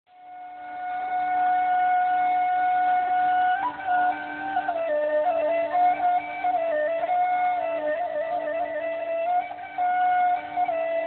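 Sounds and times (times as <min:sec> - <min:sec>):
long held flute note: 0:00.1 - 0:11.0.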